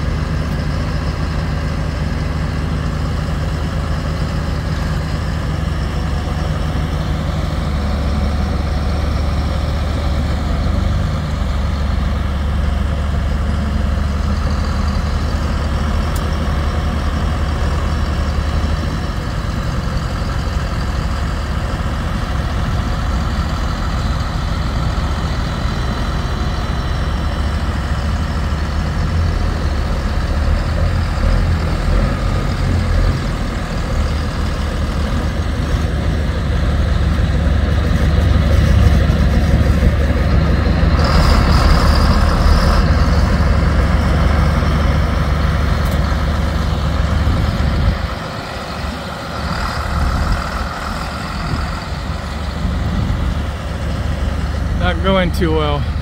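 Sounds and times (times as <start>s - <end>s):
diesel engines rumbling: 0.0s - 56.0s.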